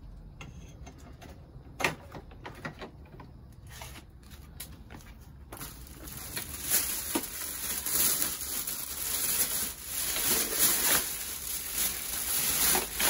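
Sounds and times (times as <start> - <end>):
plastic bag rustling and crinkling: 3.6 - 13.0.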